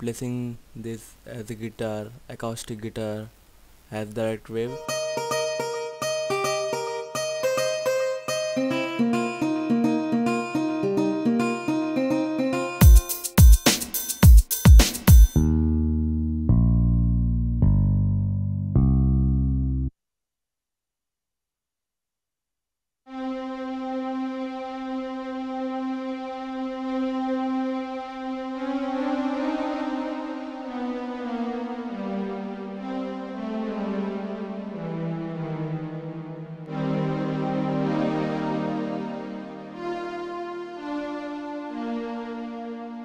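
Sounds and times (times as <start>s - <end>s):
plucked acoustic guitar melody: 4.7s - 15.5s
higher string note: 23.1s - 43.0s.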